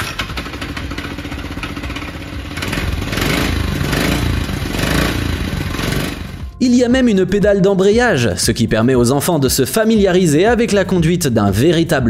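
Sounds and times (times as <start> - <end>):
small petrol engine revving: 0.0 - 6.5.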